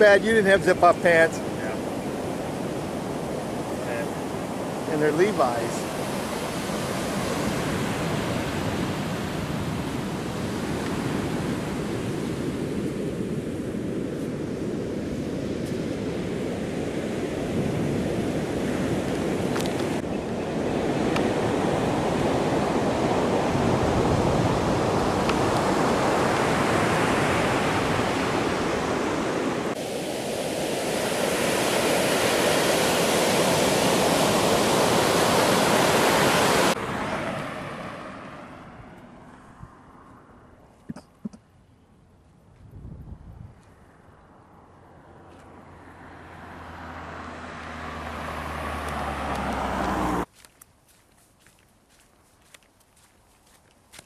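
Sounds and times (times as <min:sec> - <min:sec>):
surf breaking on beach: 0:00.0 - 0:14.0, 0:15.5 - 0:38.7
wind on microphone: 0:01.4 - 0:37.2, 0:42.5 - 0:44.0.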